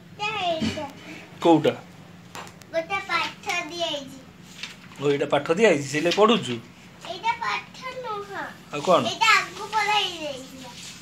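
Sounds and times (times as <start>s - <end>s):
young child speaking: 0.2s - 1.2s, 2.7s - 4.4s, 7.0s - 11.0s.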